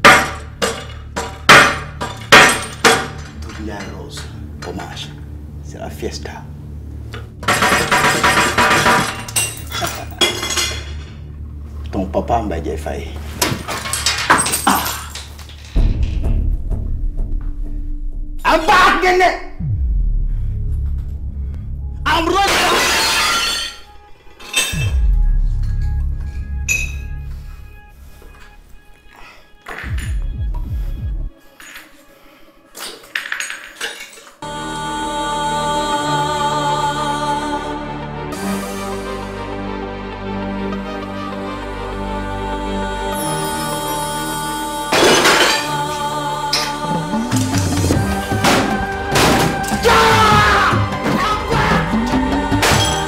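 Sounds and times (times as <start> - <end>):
sustained music: 0.0 - 53.0
glass shards scraping and clinking: 7.5 - 11.2, 13.4 - 15.8, 22.5 - 24.8, 32.8 - 34.4
ringing glass strike: 26.7 - 27.1.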